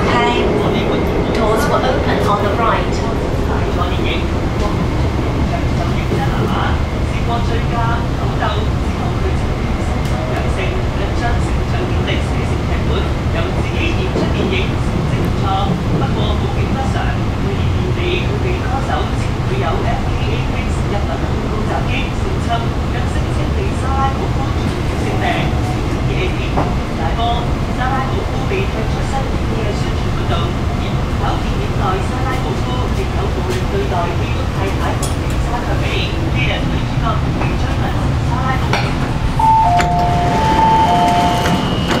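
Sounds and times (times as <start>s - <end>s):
passengers talking: 0.0s - 42.0s
train rumbling in tunnel: 0.0s - 42.0s
two-tone electronic chime: 39.4s - 42.0s.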